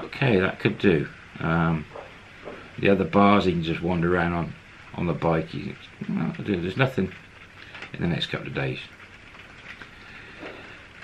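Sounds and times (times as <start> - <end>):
faint room noise hiss: 0.0 - 11.0.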